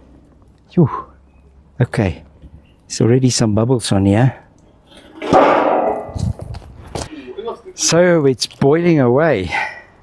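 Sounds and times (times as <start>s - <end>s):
metal lid scraping clatter: 5.0s - 6.4s
sharp metal knock: 5.2s - 6.4s.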